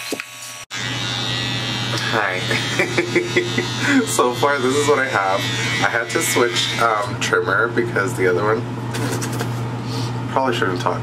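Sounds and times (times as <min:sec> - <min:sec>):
electric beard trimmer buzzing: 0:00.0 - 0:07.2.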